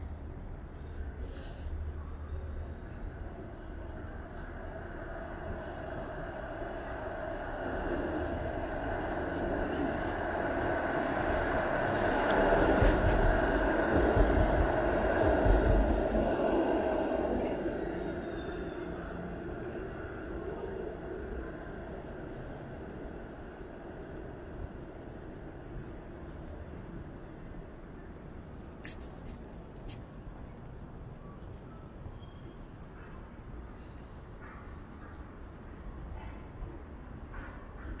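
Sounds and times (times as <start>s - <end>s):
streetcar drive hum: 0.0s - 38.0s
streetcar wheels rumbling on rails: 0.1s - 38.0s.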